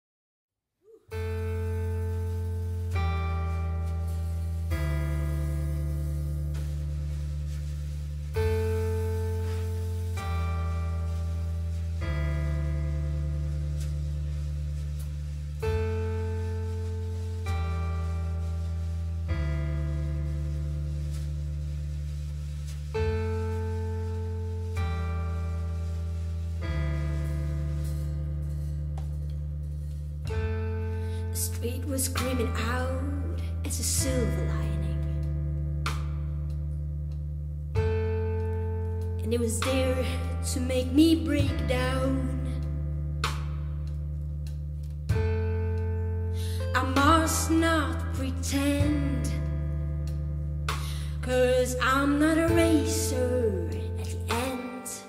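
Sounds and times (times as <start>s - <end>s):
electric keyboard low chord: 1.1s - 32.5s, 33.1s - 51.2s.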